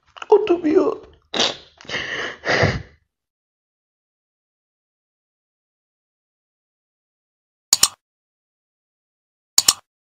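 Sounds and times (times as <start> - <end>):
woman sobbing: 1.8 - 3.0.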